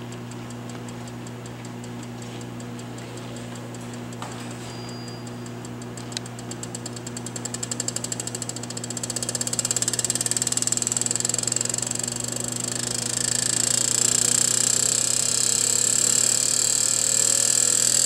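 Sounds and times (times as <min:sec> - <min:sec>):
vibration shaker ticking and buzzing: 0:00.0 - 0:18.0.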